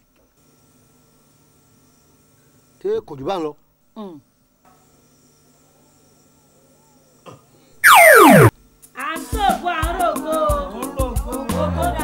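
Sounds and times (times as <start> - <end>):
pitched tone sliding down: 7.8 - 8.5.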